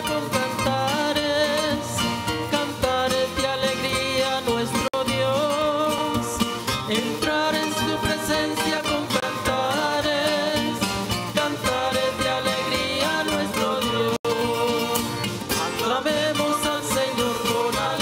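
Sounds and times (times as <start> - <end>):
hymn sung with accompaniment: 0.0 - 18.0.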